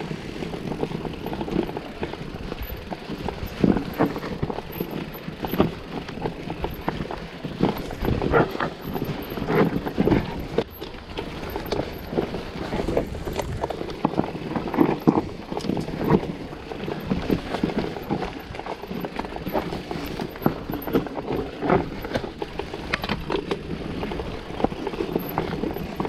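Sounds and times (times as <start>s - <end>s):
mountain bike rattling over stones: 0.0s - 26.0s
tyres rumbling on dirt: 0.0s - 26.0s.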